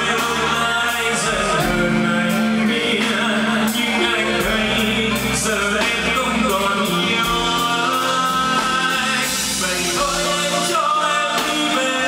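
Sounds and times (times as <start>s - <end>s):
live band with male singer: 0.0s - 12.0s.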